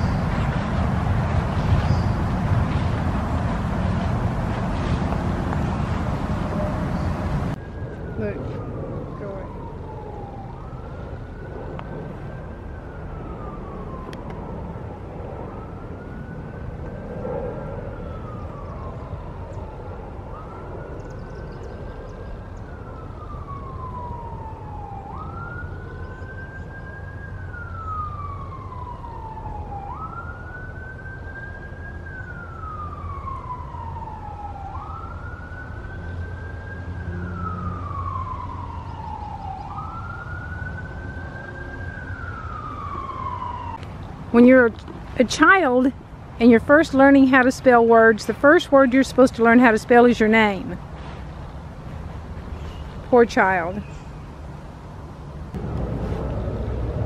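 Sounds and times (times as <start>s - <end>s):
steady low rumble: 0.0s - 25.0s, 54.2s - 57.0s
emergency siren wailing: 0.0s - 57.0s.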